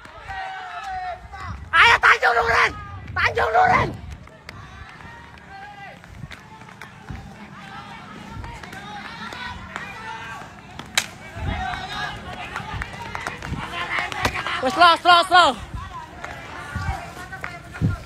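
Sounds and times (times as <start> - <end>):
running footsteps: 0.0 - 18.0
distant men shouting: 0.1 - 18.0.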